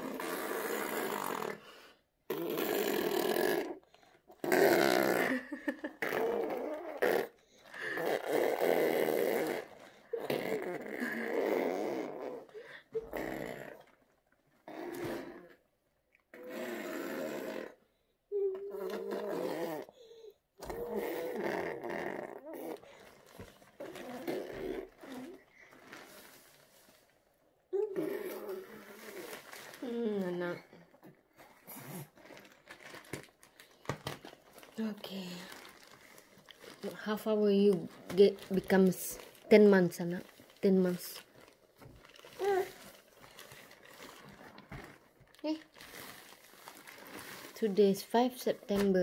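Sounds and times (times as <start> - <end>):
toddler buzzing mouth noises: 0.0 - 1.6, 2.3 - 13.8, 16.3 - 17.8, 18.4 - 20.0, 20.6 - 23.0, 23.8 - 25.4, 27.8 - 30.8, 42.4 - 42.9.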